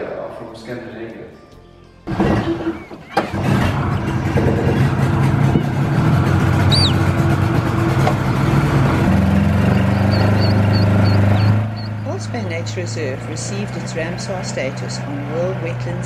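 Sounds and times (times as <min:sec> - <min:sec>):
outboard motor running: 0:02.1 - 0:16.0
birds chirping: 0:06.5 - 0:07.2, 0:09.1 - 0:15.7.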